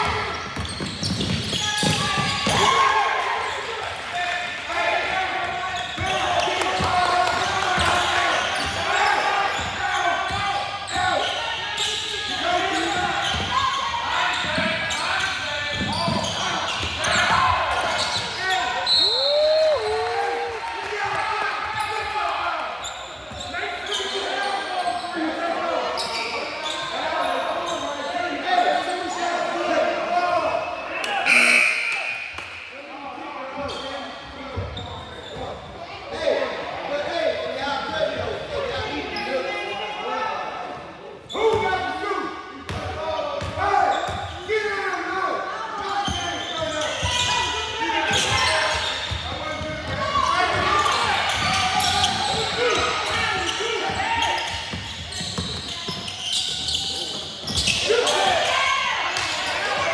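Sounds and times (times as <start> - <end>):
indistinct shouts and chatter: 1.4 - 59.9.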